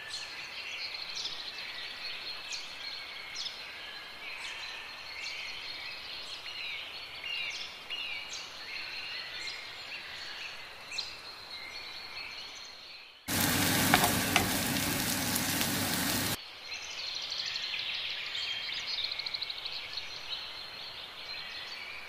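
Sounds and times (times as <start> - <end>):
onion sizzling in hot oil: 13.3 - 16.4
wooden spoon stirring: 13.3 - 16.4
spoon knocking: 13.4 - 15.2.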